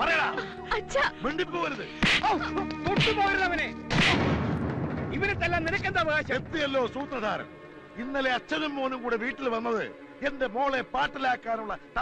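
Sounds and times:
loud bang with rumbling tail: 3.9 - 6.7.

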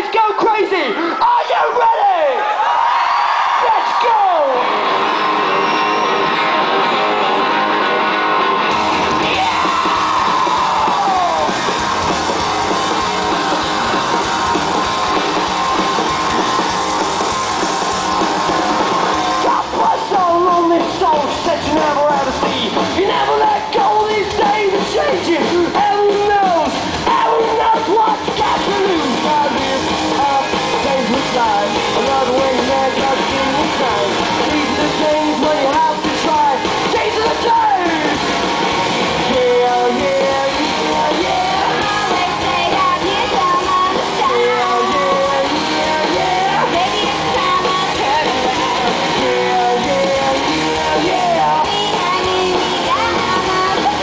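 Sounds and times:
drums: 0.0 - 54.0
electric guitars: 2.6 - 54.0
bass guitar: 2.7 - 54.0
live rock band playing: 3.2 - 54.0.

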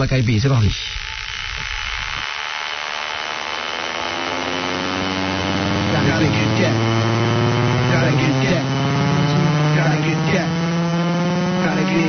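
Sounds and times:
buzzing synthesizer drone: 0.0 - 12.0.

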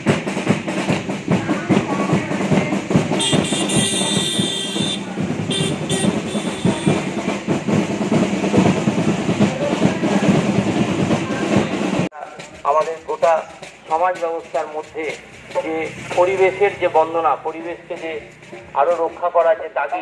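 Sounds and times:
drum rolls: 0.0 - 20.0.

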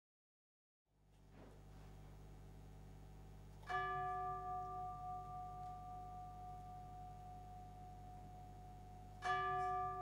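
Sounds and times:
low steady hum: 0.9 - 10.0.

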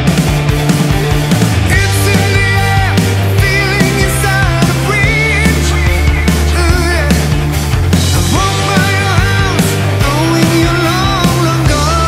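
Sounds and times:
hard rock song: 0.0 - 12.0.

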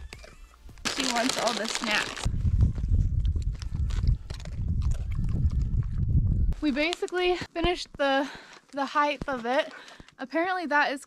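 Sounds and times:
dog crunching a cracker: 0.1 - 2.3, 3.2 - 6.0
low rumble on microphone: 2.2 - 6.8.

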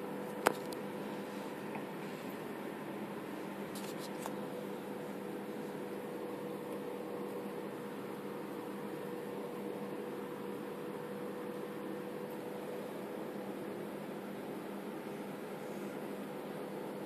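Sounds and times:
mechanical hum and hiss: 0.0 - 17.0.

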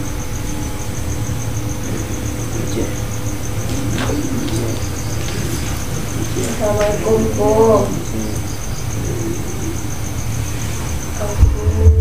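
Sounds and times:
cricket chirping: 0.0 - 12.0
low rumble: 11.2 - 12.0.

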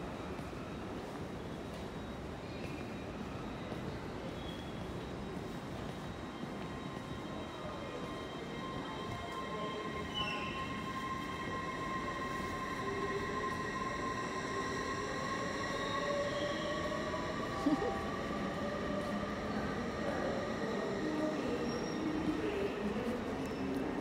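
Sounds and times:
whining tones gliding in pitch: 6.6 - 22.4.

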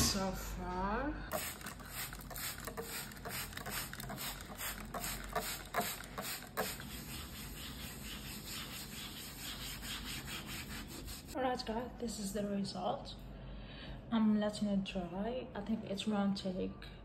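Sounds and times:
sponge scrubbing wooden tabletop: 1.3 - 11.4.

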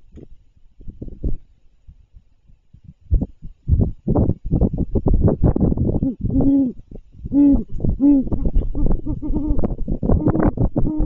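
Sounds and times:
owl hooting: 5.9 - 11.0.

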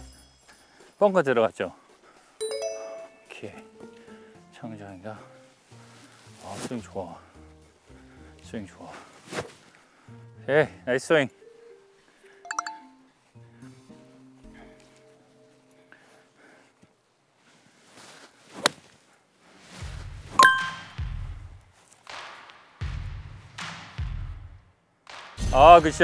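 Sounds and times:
soft background music: 1.1 - 9.4, 10.0 - 16.6
ringing ding: 2.4 - 3.4, 20.4 - 21.0.

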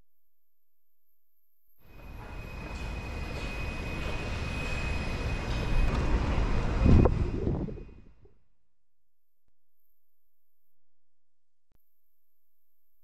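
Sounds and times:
faint high whine: 1.7 - 8.6
wind on microphone: 5.9 - 8.4.

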